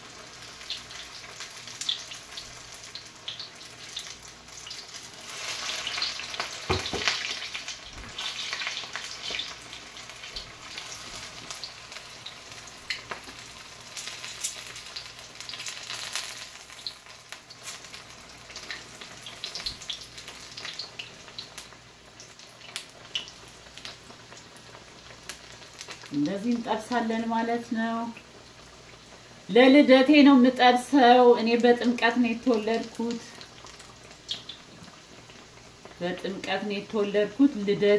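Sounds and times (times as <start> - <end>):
food deep-frying in hot oil: 0.0 - 37.9.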